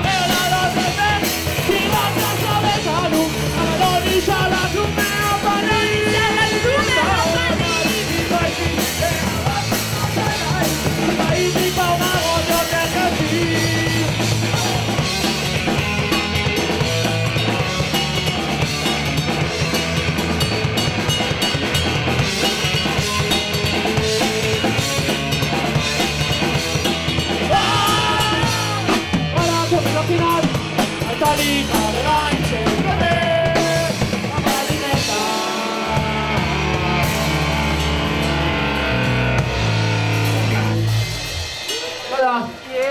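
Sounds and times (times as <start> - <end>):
bass guitar: 0.0 - 42.7
drum kit beat: 0.0 - 42.9
electric guitar: 0.0 - 42.9.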